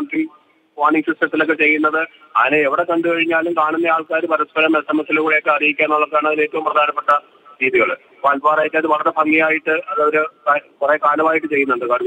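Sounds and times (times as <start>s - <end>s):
man speaking over telephone: 0.0s - 12.0s.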